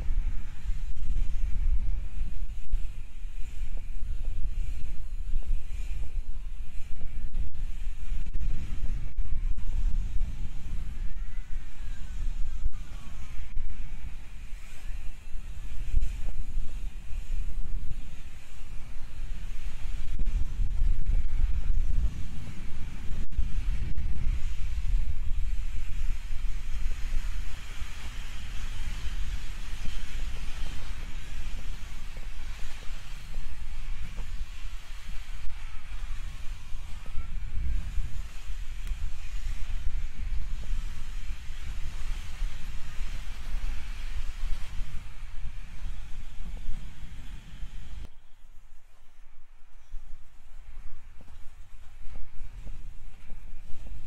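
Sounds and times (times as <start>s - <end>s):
skate wheels rolling on concrete: 0.0s - 54.0s
wind buffeting microphone: 0.0s - 54.0s.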